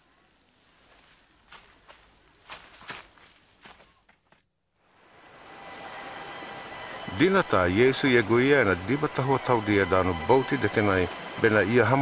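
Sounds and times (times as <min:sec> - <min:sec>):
faint footsteps: 0:00.4 - 0:04.6.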